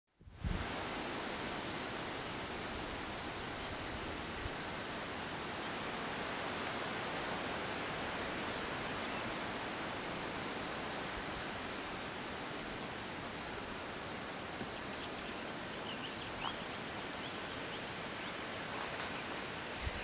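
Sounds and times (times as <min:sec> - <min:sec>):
wind bump on microphone: 0:00.2 - 0:00.8
wind noise: 0:00.2 - 0:00.9, 0:19.7 - 0:20.0.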